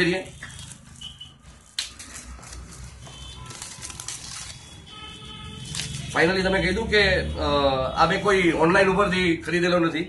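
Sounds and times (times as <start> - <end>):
plastic wrap crinkling: 0.0 - 6.4.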